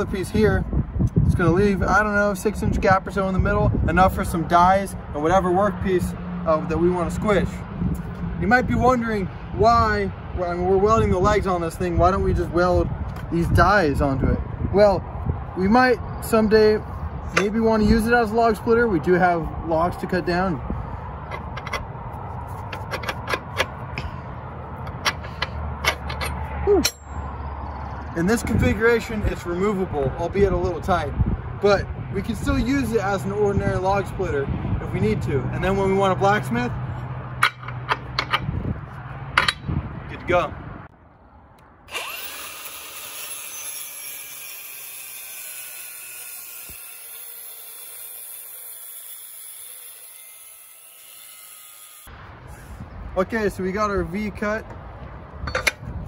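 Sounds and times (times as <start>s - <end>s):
angle grinder cutting steel: 41.9s - 52.1s.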